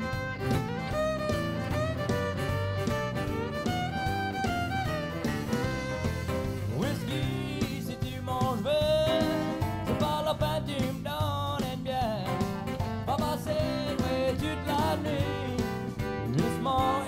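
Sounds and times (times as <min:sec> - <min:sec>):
band playing instrumental: 0:00.0 - 0:17.0.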